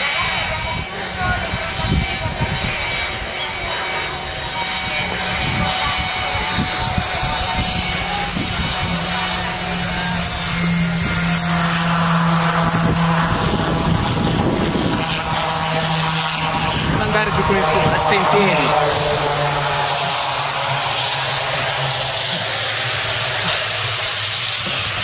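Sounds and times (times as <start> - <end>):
aircraft engine drone: 0.0 - 25.0
continuous rushing noise: 0.0 - 25.0.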